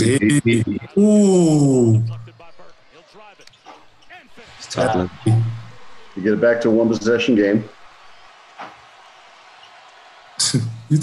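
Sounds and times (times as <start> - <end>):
man saying ooh: 0.0 - 2.1.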